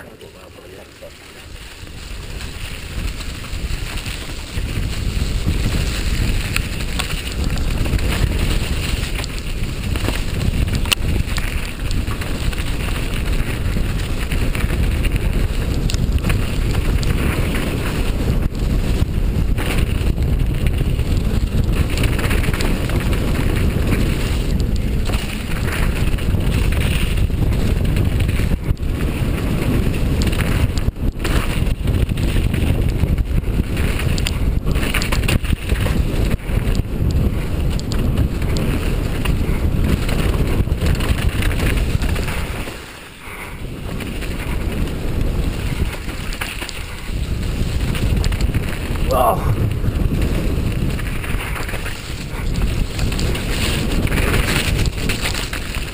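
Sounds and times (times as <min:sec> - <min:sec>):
bike tyre and frame noise: 0:00.0 - 0:55.9
wind buffeting microphone: 0:00.0 - 0:55.9.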